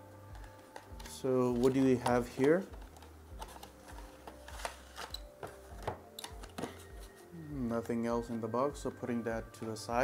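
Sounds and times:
cardboard and plastic handling: 0.4 - 7.2.

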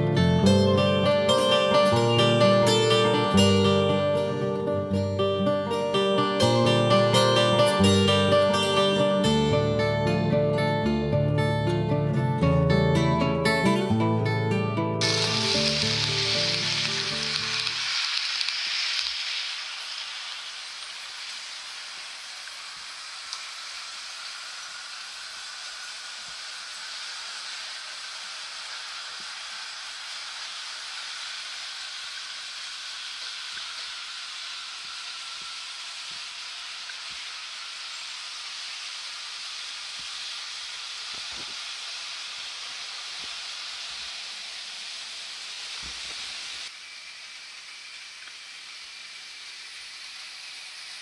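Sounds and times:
acoustic guitar music: 0.0 - 17.8
model train running: 15.0 - 51.0.

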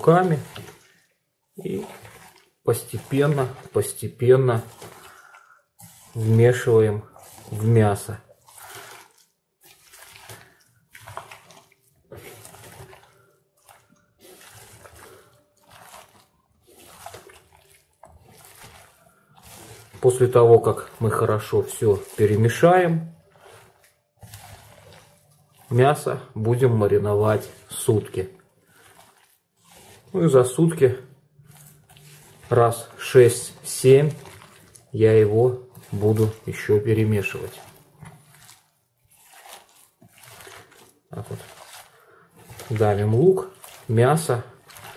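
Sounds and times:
wet squelching of kneaded meat: 0.0 - 44.9.

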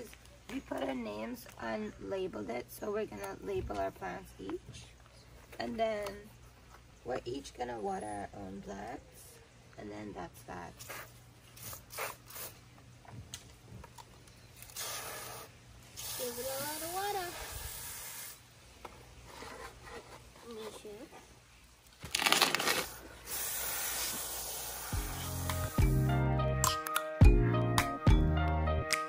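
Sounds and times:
hose spraying water onto soil: 10.8 - 12.6, 14.7 - 18.4, 22.9 - 25.8
music: 24.9 - 29.0.

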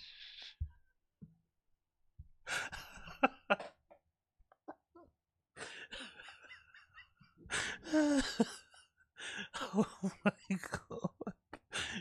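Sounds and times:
man's stifled laughter: 9.5 - 12.0.

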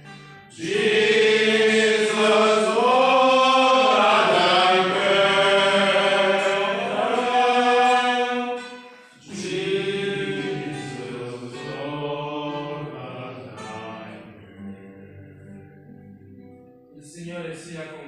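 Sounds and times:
men singing a hymn: 0.5 - 15.6.

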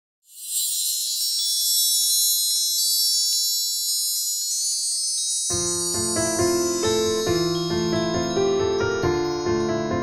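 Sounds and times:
bright shimmering chime: 0.2 - 10.0.

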